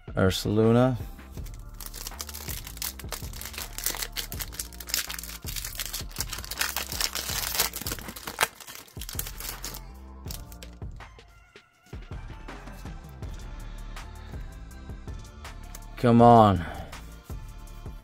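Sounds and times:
quiet background music: 0.0 - 18.0
foil wrapper crinkling and tearing: 1.4 - 10.8.

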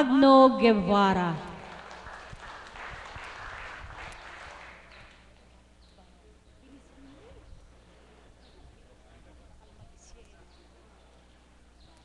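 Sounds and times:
congregation clapping: 1.3 - 5.6.

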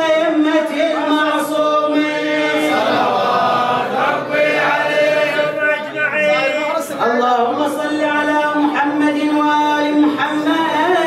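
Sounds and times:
man chanting unaccompanied: 0.0 - 11.0
male voices chanting along: 0.6 - 7.9.

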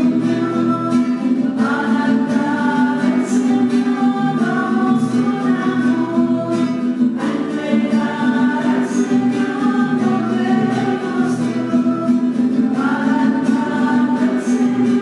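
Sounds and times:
group singing a hymn: 0.0 - 15.0
guitar accompaniment: 0.0 - 15.0.

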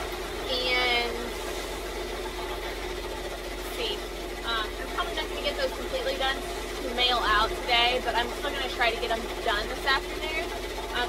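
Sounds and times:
embroidery machines humming: 0.0 - 11.0.

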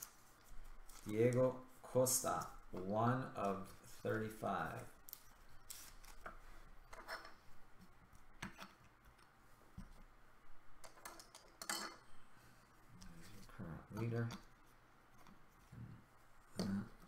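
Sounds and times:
plastic sleeve rustling: 0.0 - 2.7.

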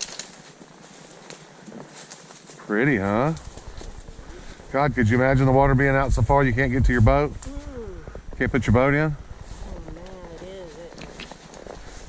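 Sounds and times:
hooves crunching dry leaves: 0.0 - 4.8, 9.3 - 12.0.

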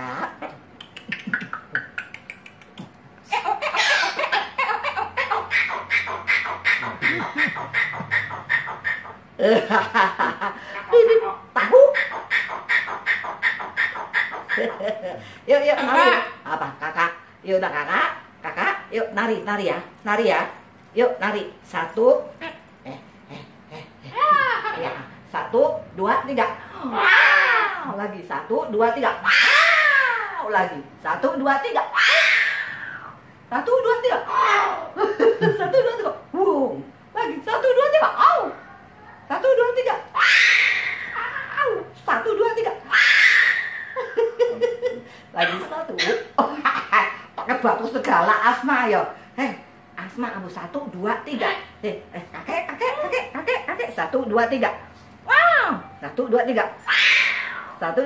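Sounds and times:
cockatoo laugh-like call: 3.2 - 16.4, 42.8 - 47.4
cockatoo screeching: 3.3 - 9.3, 11.1 - 15.0, 26.8 - 27.9, 29.2 - 30.4, 31.8 - 33.2, 34.3 - 34.9, 40.1 - 41.9, 42.8 - 44.2, 56.8 - 57.9.

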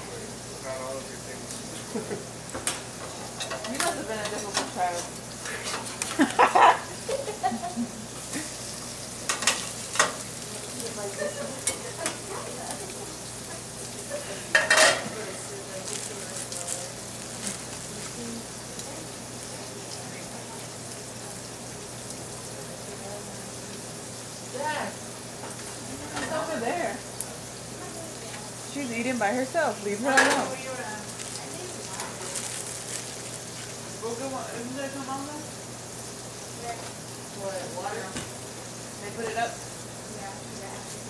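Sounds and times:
food sizzling in pans: 0.0 - 41.0
metal tongs clinking on pans: 2.6 - 6.3, 9.2 - 12.9, 14.5 - 15.4, 30.0 - 30.6.

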